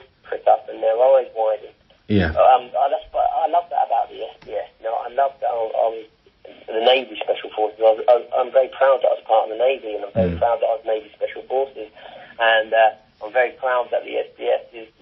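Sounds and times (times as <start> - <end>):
man talking: 0.3 - 15.0.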